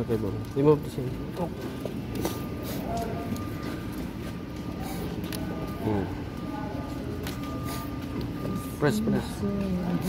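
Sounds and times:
faint voices: 1.0 - 10.0.

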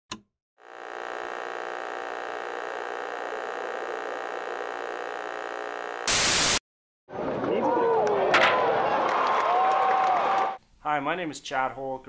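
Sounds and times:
steady electronic drone: 0.6 - 6.6.

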